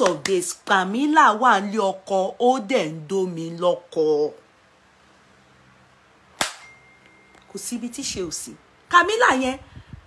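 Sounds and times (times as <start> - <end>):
sharp knock: 6.4 - 6.8.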